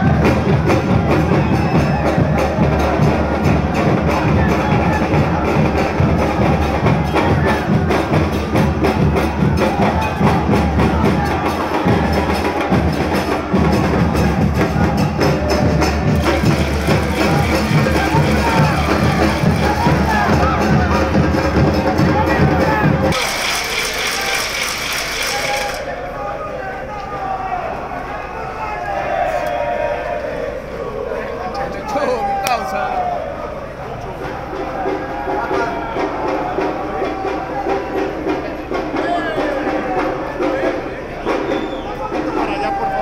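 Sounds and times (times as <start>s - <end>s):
steady drum beat: 0.0s - 25.9s, 34.2s - 43.0s
crowd chanting: 0.0s - 43.0s.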